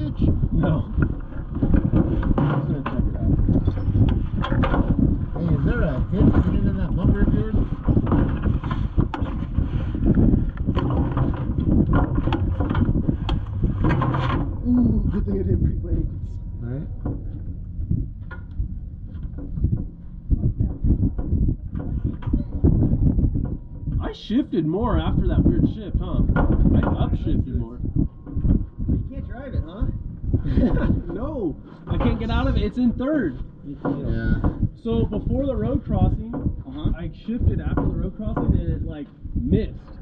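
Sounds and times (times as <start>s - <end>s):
muffled talking: 0.0s - 4.1s, 5.3s - 7.7s, 14.6s - 17.5s, 24.0s - 27.9s, 29.0s - 40.0s
low uneven rumble: 0.0s - 40.0s.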